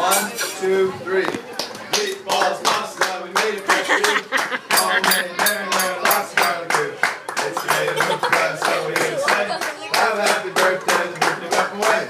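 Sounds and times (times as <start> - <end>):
group clapping in rhythm: 1.6 - 12.0
voices singing birthday song: 1.9 - 12.0.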